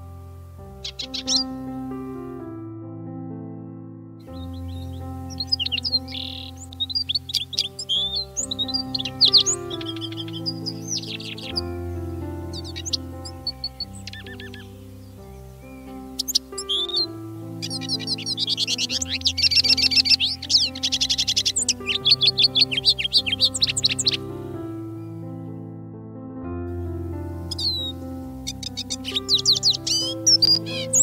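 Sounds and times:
birds chirping and trilling: 0.0s - 2.4s, 4.2s - 25.7s, 26.8s - 31.0s
slow sustained background music: 0.0s - 31.0s.

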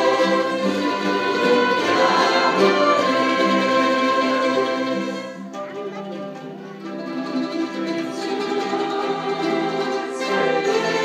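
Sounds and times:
string ensemble playing chords: 0.0s - 11.0s.

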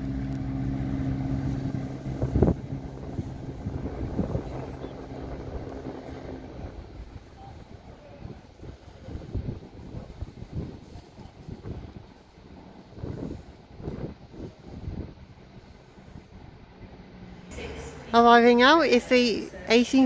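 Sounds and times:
wind buffeting microphone: 0.0s - 17.4s
diesel train engine drone: 0.0s - 20.0s.

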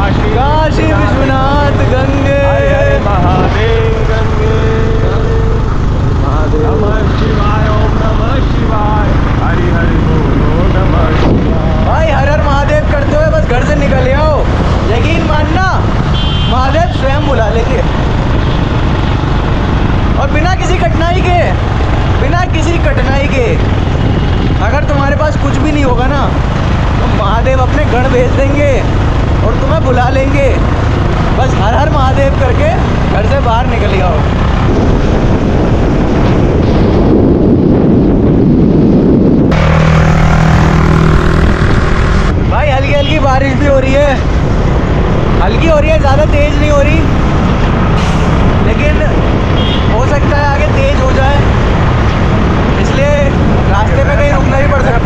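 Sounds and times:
man talking: 0.0s - 15.9s, 16.5s - 18.0s, 20.2s - 23.7s, 24.6s - 26.4s, 27.0s - 30.7s, 31.3s - 34.3s, 42.5s - 44.3s, 45.4s - 47.1s, 48.6s - 51.6s, 52.8s - 55.0s
wind buffeting on motorcycle: 0.0s - 55.0s.

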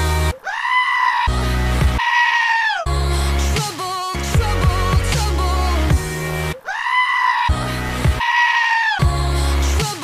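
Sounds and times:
goat bleating: 2.0s - 2.8s, 8.2s - 9.0s
pop song beat: 2.9s - 6.1s, 9.0s - 10.0s.

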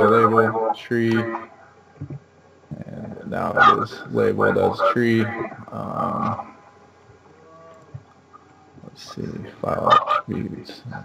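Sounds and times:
person speaking: 0.0s - 1.5s, 2.7s - 6.5s, 8.8s - 11.0s
faint hum: 0.0s - 11.0s.

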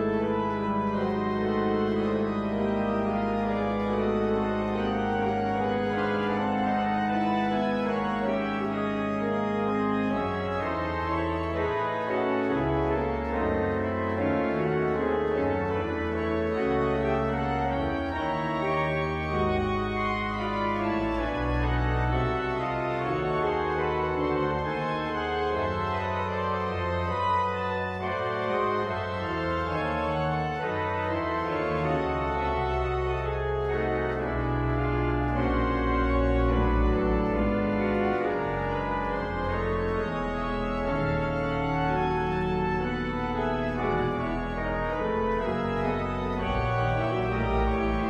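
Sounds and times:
pipe organ chords: 0.0s - 48.0s.

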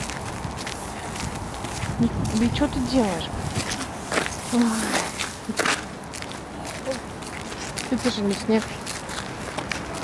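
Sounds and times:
footsteps on a path: 0.0s - 10.0s.

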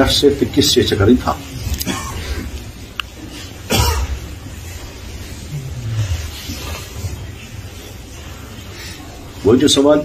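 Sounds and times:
low steady hum: 0.0s - 9.8s
man coughing: 1.8s - 2.5s, 3.7s - 4.2s.

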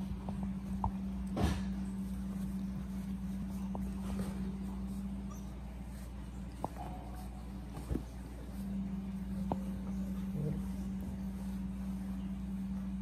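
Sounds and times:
steady low hum: 0.0s - 13.0s
puppies whimpering: 5.2s - 5.9s.

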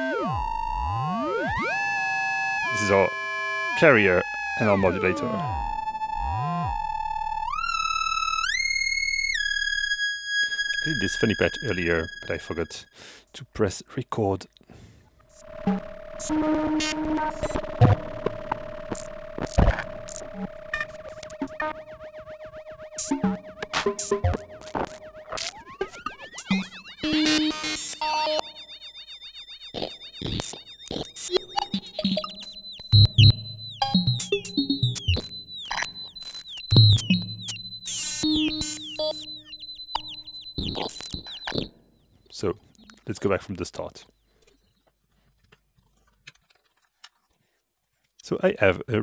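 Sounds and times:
synthesizer tone gliding to whistle: 0.0s - 12.9s, 15.4s - 41.7s
short blips: 15.3s - 41.8s
scattered clicks: 15.6s - 21.7s, 29.7s - 39.3s, 39.9s - 41.7s.

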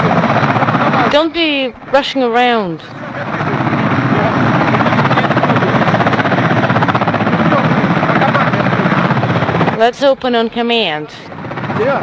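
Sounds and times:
helicopter rotor noise: 0.0s - 12.0s.

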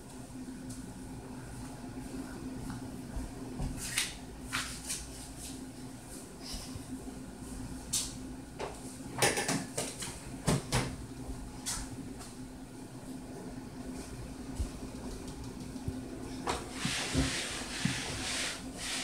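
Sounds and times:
steady low hum: 0.0s - 9.2s, 9.8s - 19.0s.

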